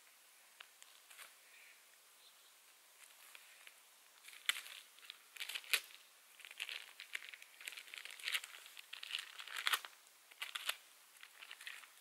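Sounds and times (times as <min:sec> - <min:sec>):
plastic bag crinkling and tearing: 0:04.2 - 0:12.0.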